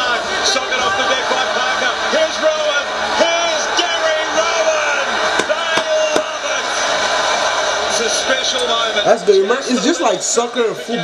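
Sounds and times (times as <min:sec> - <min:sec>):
stadium crowd noise: 0:00.0 - 0:11.0
sharp knocks: 0:05.4 - 0:06.3.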